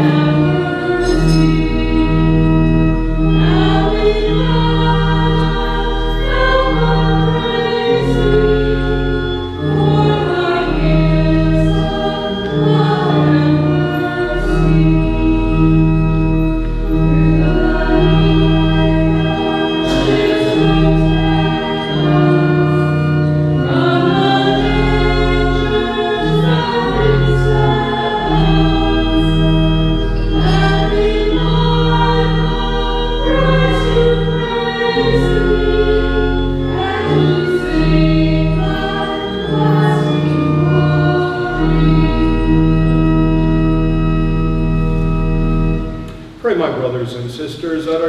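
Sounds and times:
choir singing a hymn: 0:00.0 - 0:44.6
organ chords: 0:00.0 - 0:48.0.

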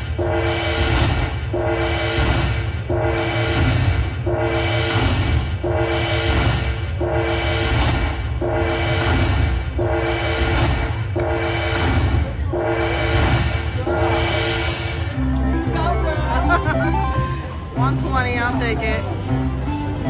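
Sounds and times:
slot machine bonus music: 0:15.7 - 0:17.5.

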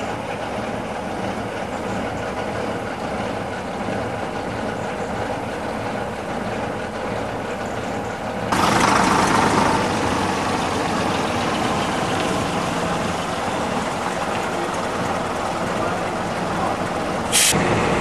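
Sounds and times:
bus engine droning: 0:00.0 - 0:18.0.

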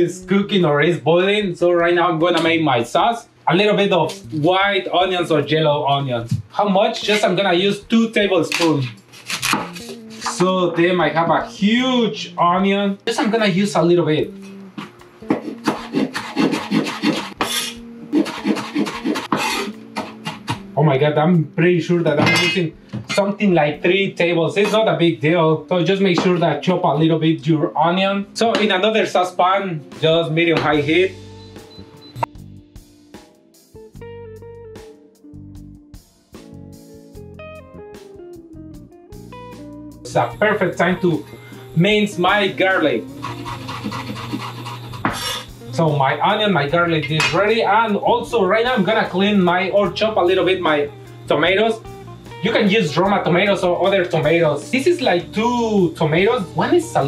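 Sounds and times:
knife scrape: 0:07.1 - 0:07.3, 0:08.5 - 0:10.3, 0:14.8 - 0:20.6, 0:43.1 - 0:45.6
knife chopping on wooden board: 0:09.2 - 0:09.8, 0:14.8 - 0:20.7, 0:43.2 - 0:45.4.

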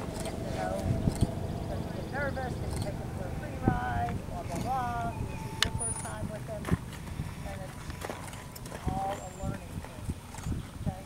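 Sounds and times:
horse hooves trotting on grass: 0:00.0 - 0:10.9
faint voices: 0:00.0 - 0:11.0.

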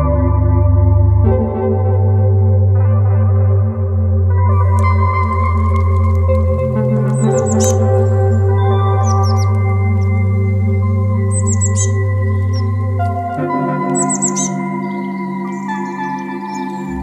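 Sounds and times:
ambient synthesizer chords: 0:00.0 - 0:17.0
small bird chirping: 0:04.6 - 0:17.0.

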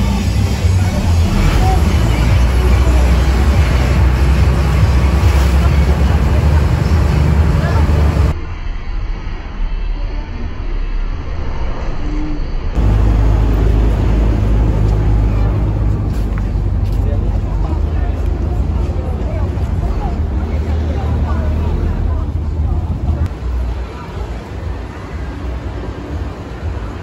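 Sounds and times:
people talking: 0:00.0 - 0:08.4, 0:12.8 - 0:27.0
vehicle traffic rumble: 0:00.0 - 0:08.4, 0:12.6 - 0:27.0.

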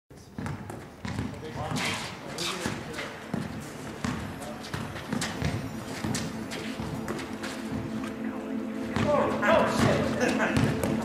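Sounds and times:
basketball bouncing: 0:00.4 - 0:01.8, 0:02.7 - 0:07.2, 0:10.6 - 0:11.0.

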